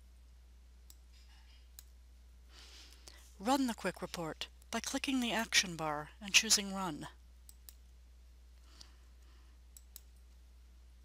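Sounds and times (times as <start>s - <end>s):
low steady hum: 0.0s - 11.0s
faint computer mouse clicks: 9.7s - 10.4s.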